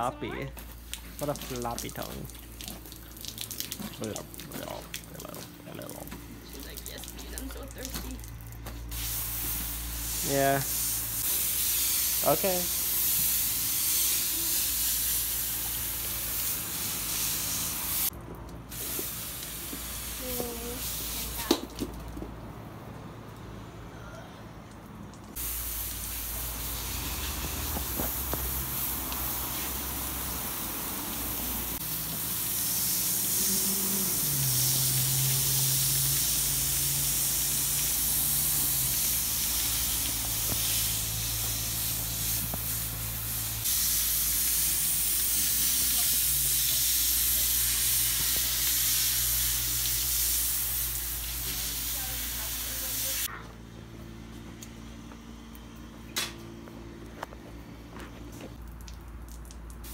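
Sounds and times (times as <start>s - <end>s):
garden hose spraying water: 0.0s - 22.3s, 24.6s - 53.4s, 58.3s - 59.9s.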